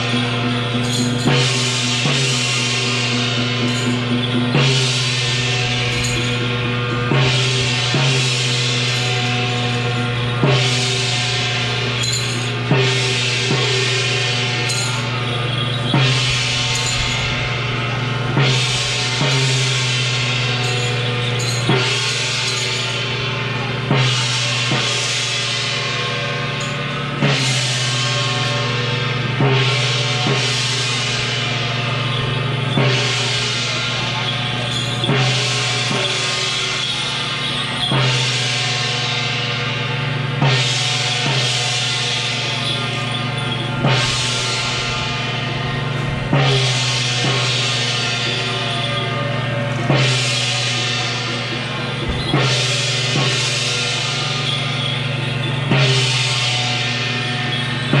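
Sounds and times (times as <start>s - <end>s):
hand-held gong ringing: 0.0s - 58.0s
large drum beats: 0.0s - 58.0s.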